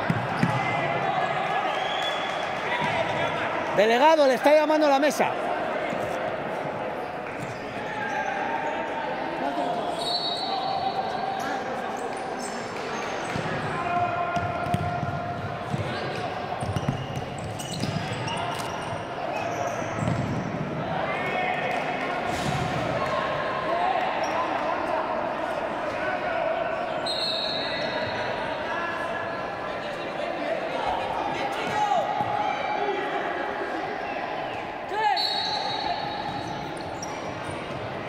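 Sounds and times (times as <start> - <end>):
ball kicked and bouncing on wooden court: 14.4 - 16.0, 20.0 - 20.4.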